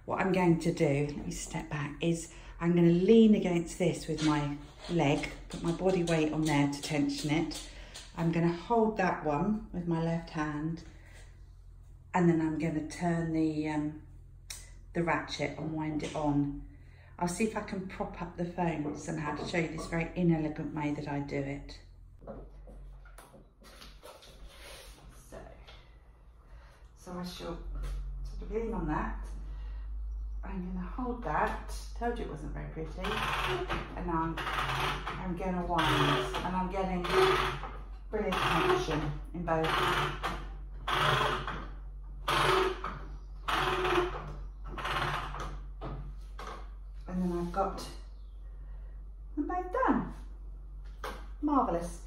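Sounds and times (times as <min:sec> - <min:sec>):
loom ratchet clicking: 0:33.0 - 0:45.7.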